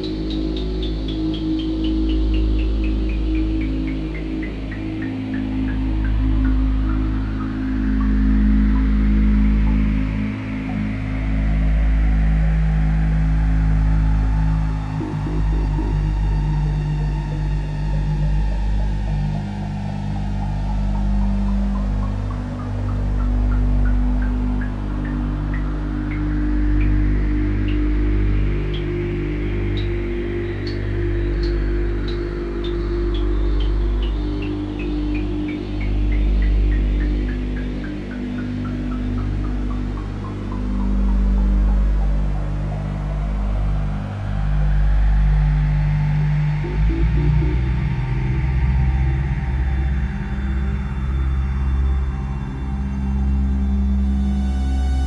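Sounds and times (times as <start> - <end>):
low synthesizer drones: 0.0 - 55.0.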